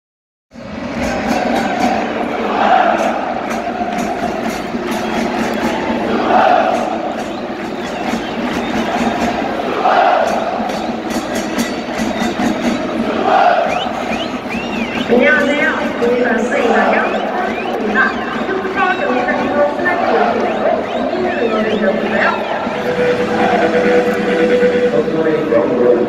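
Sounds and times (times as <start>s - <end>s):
crowd chanting in unison: 0.6s - 25.1s
sharp beats: 0.6s - 25.2s.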